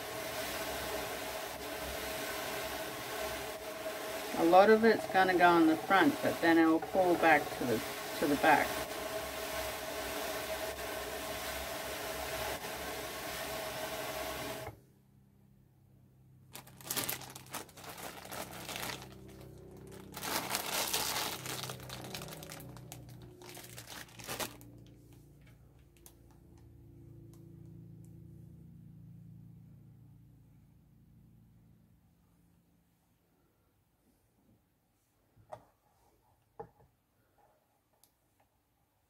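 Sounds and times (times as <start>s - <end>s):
hand-cranked drum carder whirring: 0.0s - 14.8s
fibre crinkling and rustling: 16.5s - 26.6s.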